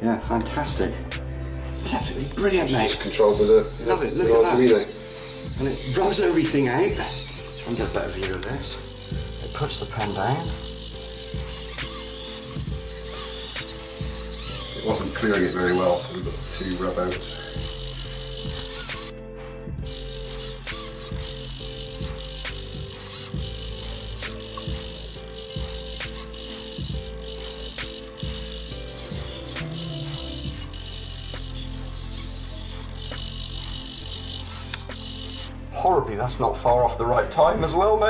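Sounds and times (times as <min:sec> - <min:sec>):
servo clicks: 0:01.0 - 0:19.2, 0:19.8 - 0:35.7
steady hum: 0:01.0 - 0:35.8
small servos moving: 0:01.5 - 0:19.2, 0:19.8 - 0:35.6.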